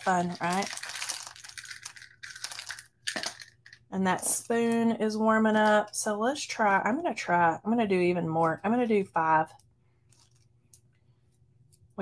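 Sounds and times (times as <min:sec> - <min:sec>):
beads rattling in a jar: 0:00.0 - 0:03.9.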